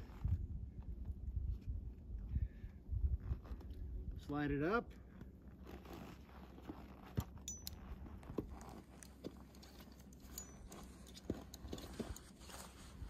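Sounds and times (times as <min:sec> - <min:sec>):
steady low rumble: 0:00.0 - 0:13.0
climbing hardware clicks on rock: 0:06.7 - 0:12.4.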